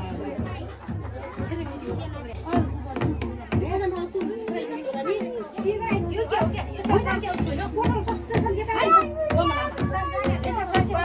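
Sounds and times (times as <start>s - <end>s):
music: 0.0s - 11.0s
people talking over one another: 0.0s - 11.0s.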